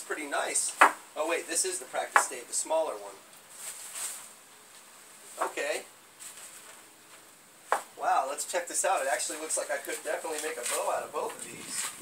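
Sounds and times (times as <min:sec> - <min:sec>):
plastic wrapping rustling: 0:03.4 - 0:05.6, 0:06.2 - 0:07.3, 0:09.0 - 0:12.0.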